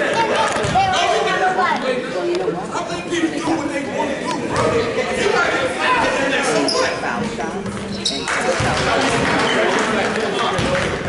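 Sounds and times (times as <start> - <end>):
chatter of people: 0.0 - 11.0.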